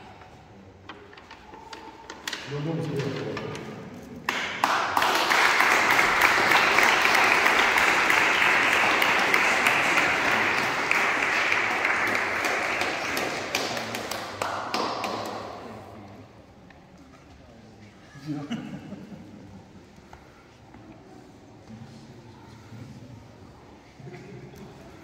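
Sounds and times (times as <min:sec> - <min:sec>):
congregation applauding: 0:04.3 - 0:15.7.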